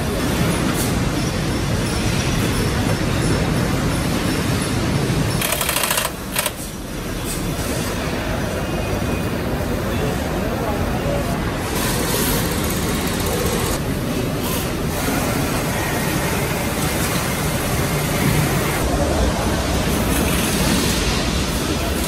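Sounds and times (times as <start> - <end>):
factory floor background noise: 0.0 - 22.0.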